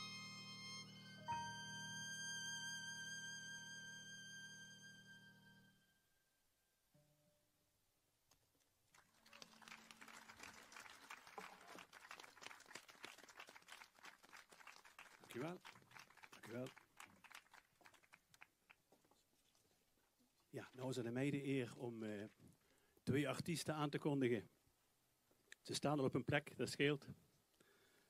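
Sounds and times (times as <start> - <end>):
audience applauding: 8.9 - 18.8.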